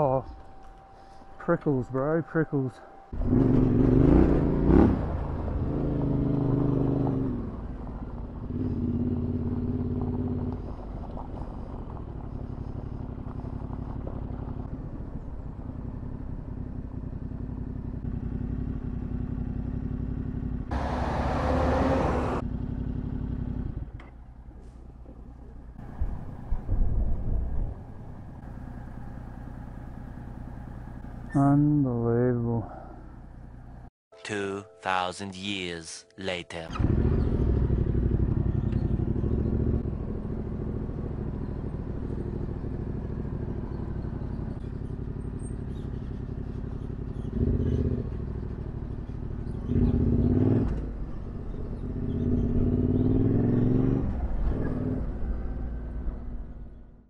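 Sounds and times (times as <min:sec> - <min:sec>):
motorcycle engine revving: 0:03.1 - 0:10.8, 0:11.6 - 0:24.0, 0:36.7 - 0:57.0.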